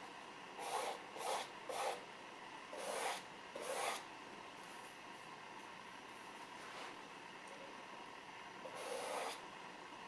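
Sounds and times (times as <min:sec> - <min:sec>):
paintbrush scratchy strokes: 0:00.6 - 0:02.0, 0:02.8 - 0:04.0, 0:08.7 - 0:09.4.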